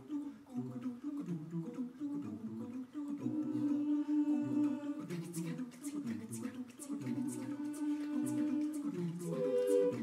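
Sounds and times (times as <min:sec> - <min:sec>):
choir singing a cappella: 0:00.0 - 0:10.0.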